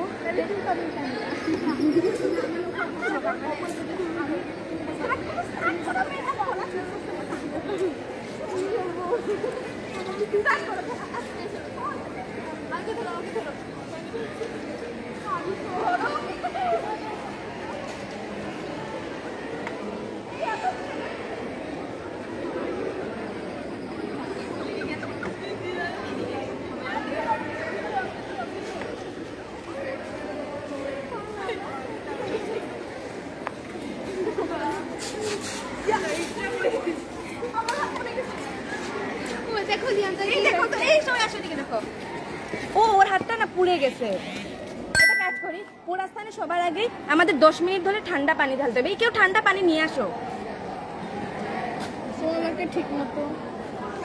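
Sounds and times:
girls chattering and calling out: 0.0s - 54.0s.

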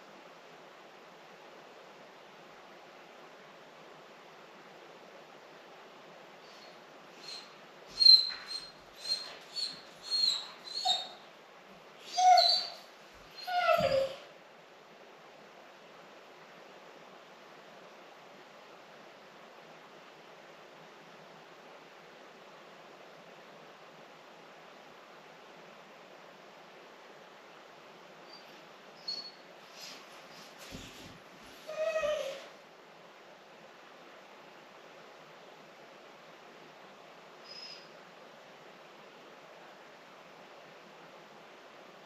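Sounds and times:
dog whimpering: 6.5s - 11.3s, 12.0s - 14.3s, 28.3s - 29.4s, 31.6s - 32.6s
dog howling whines: 7.2s - 11.2s, 12.0s - 14.3s, 31.6s - 32.5s.

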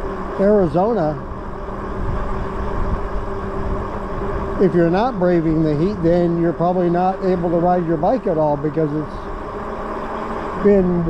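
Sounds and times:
bicycle tyre rumble: 0.0s - 11.0s
electric motor hum: 0.0s - 11.0s
wind rushing over microphone: 0.0s - 11.0s.

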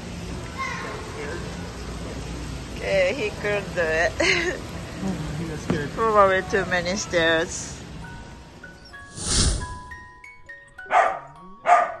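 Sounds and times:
light music with held notes: 4.2s - 12.0s
dog barking: 10.9s - 12.0s.

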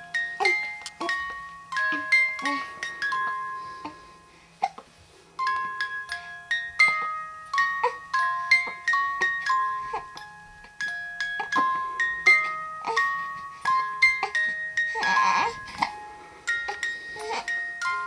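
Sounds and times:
crib mobile chiming lullaby: 0.0s - 18.0s.

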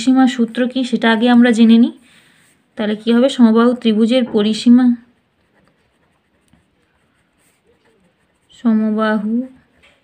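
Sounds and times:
ballpoint pen scratching on paper: 3.8s - 10.0s.

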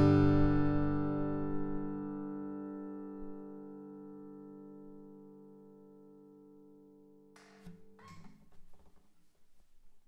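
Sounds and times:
guitar strings muted: 7.4s - 9.1s
guitar handling knocks and rustling: 7.4s - 9.3s.

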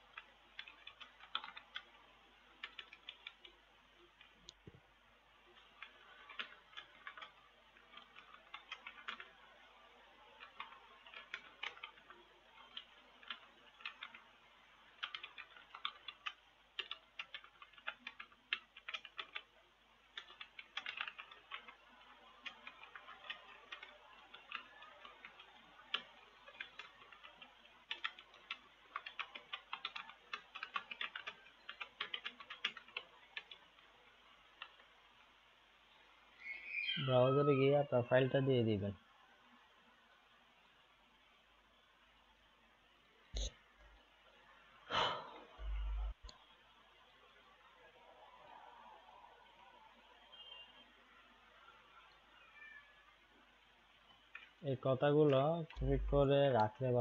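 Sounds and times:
typing on computer keyboard: 0.0s - 2.0s, 2.6s - 3.6s, 5.6s - 9.6s, 10.2s - 14.3s, 14.9s - 19.5s, 20.1s - 33.9s.

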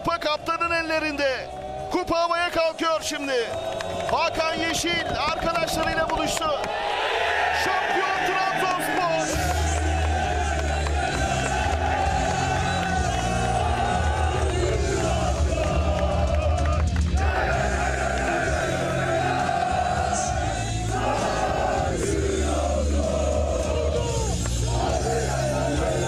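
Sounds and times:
young men cheering and chanting: 0.0s - 26.0s
loud music with bass line: 9.3s - 26.0s.

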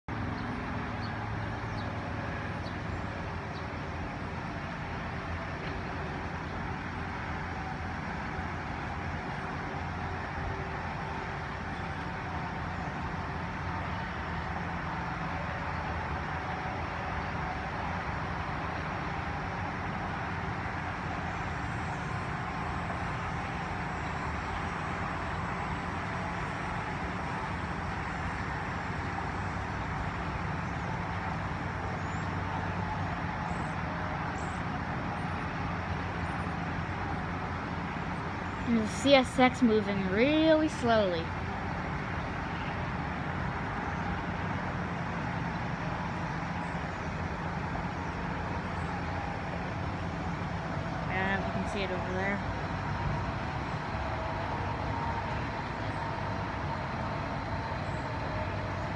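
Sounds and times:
distant road traffic rumble: 0.1s - 58.9s.

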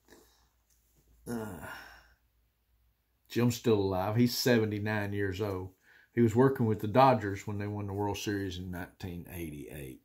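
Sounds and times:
man saying uh: 1.3s - 1.9s.

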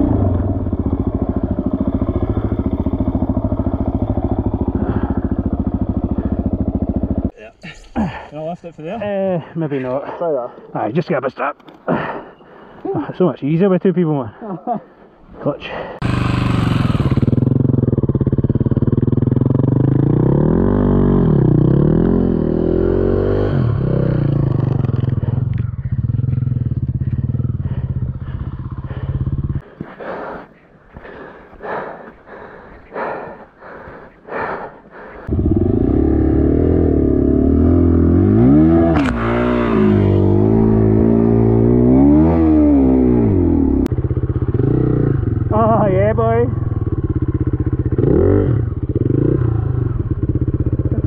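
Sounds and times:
dirt bike engine revving: 0.0s - 7.3s, 16.0s - 29.6s, 35.3s - 51.0s.

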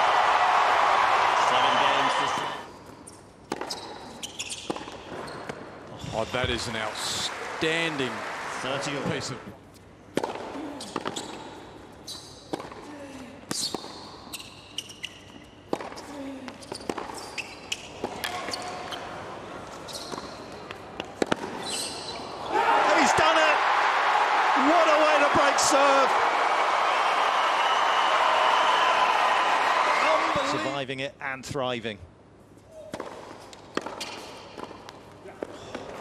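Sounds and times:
crowd cheering and whistling: 0.0s - 2.7s, 22.4s - 30.7s
racket hitting tennis ball: 10.1s - 11.2s, 21.1s - 21.7s.

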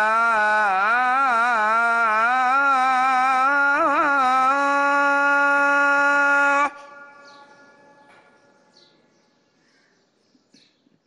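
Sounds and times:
echo of sung call over loudspeakers: 0.0s - 9.1s
bird chirps: 6.8s - 11.0s.

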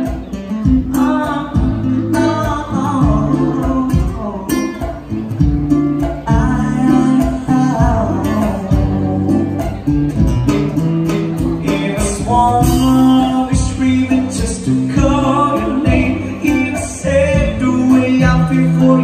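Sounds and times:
acoustic guitar: 0.0s - 19.0s
man and woman singing duet: 0.8s - 5.0s, 6.2s - 9.7s, 11.4s - 19.0s.

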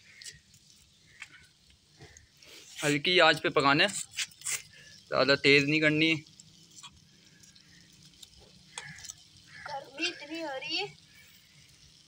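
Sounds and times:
small ticks: 0.0s - 2.4s, 4.0s - 12.0s
food sizzling in iron pan: 0.0s - 12.0s.

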